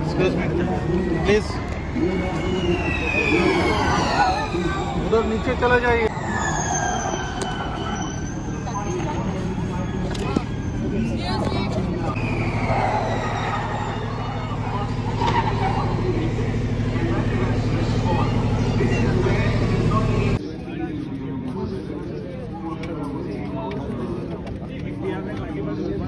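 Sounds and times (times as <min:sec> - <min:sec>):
electric race car whine: 0:00.0 - 0:20.4
voices: 0:00.0 - 0:26.0
steady low hum: 0:06.1 - 0:20.4.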